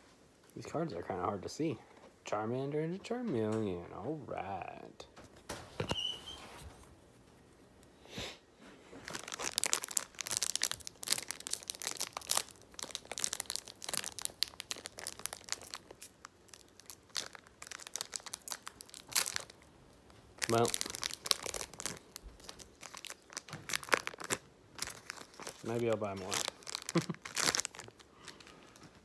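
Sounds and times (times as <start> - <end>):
foil wrapper tearing and crinkling: 9.0 - 19.7, 20.3 - 29.0.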